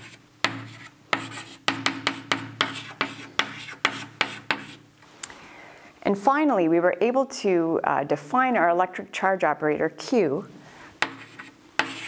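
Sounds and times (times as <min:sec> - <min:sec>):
chalk writing on blackboard: 0:00.0 - 0:04.8, 0:11.0 - 0:12.0.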